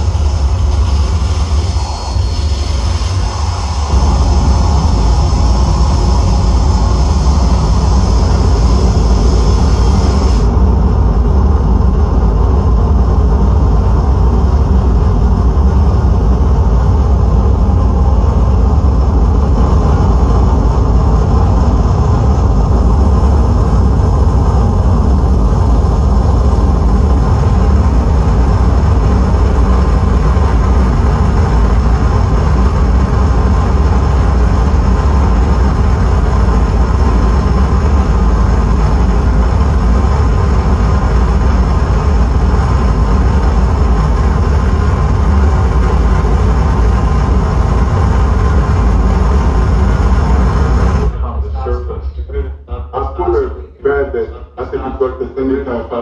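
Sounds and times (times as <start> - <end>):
distorted electronic noise wall: 0.0 - 56.0.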